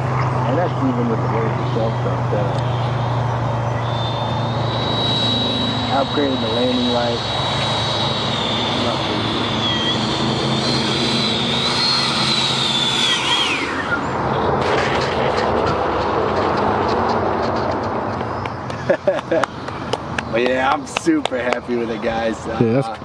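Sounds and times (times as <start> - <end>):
electric fan jet whine: 0.0 - 23.0
steady rushing noise: 0.0 - 23.0.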